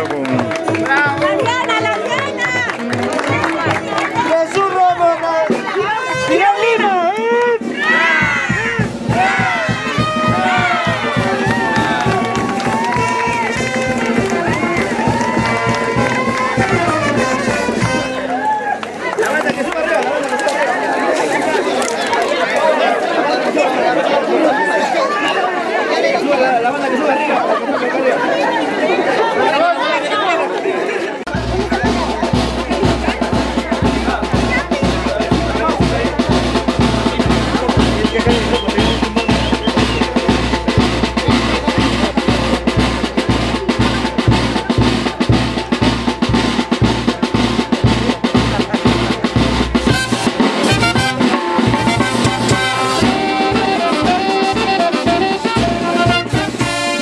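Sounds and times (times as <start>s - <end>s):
bass drum and snare drum beat: 0.0s - 18.6s, 31.3s - 57.0s
crowd chatter: 0.0s - 57.0s
brass band playing: 0.3s - 19.4s, 31.3s - 57.0s.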